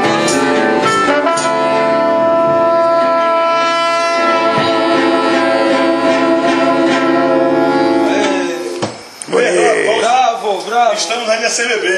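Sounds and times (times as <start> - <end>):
trombone and clarinet ensemble: 0.8 - 8.2.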